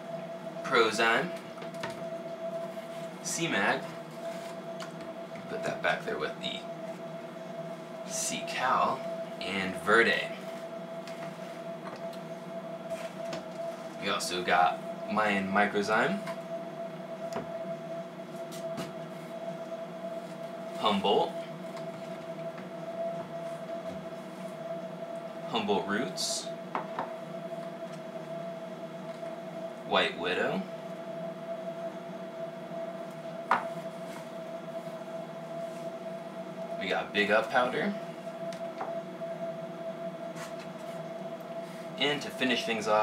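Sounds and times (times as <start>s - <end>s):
steady hum: 0.0s - 43.0s.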